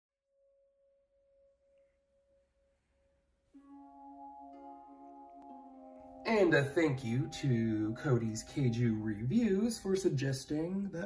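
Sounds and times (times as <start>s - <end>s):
faint steady pure tone: 1.3s - 11.0s.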